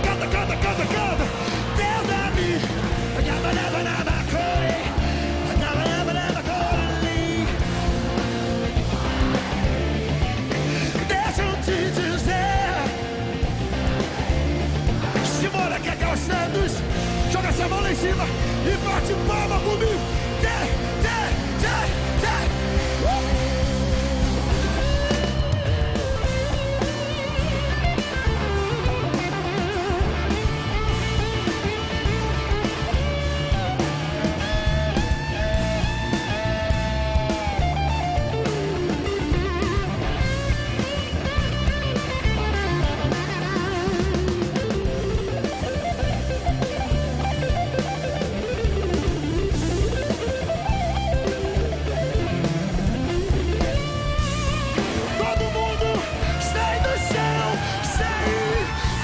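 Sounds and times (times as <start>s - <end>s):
electric guitar bending notes: 0.0s - 59.0s
live band playing: 0.0s - 59.0s.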